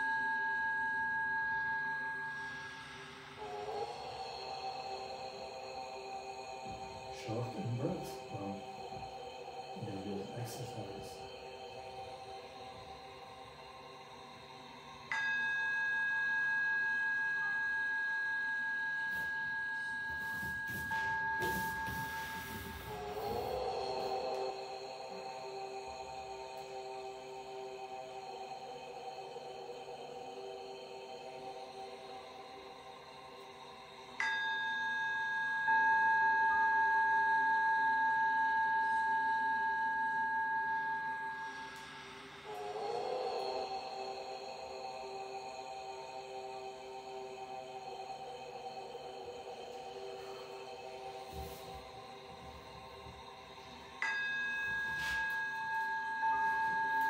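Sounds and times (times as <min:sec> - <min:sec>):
singing bowl ringing: 0:00.0 - 0:13.0, 0:15.0 - 0:31.2, 0:33.3 - 0:57.0
ambient drone: 0:00.0 - 0:57.0.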